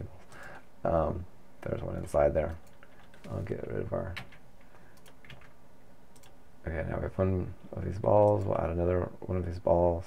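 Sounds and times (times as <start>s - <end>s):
keyboard and mouse clicks: 4.1s - 6.4s.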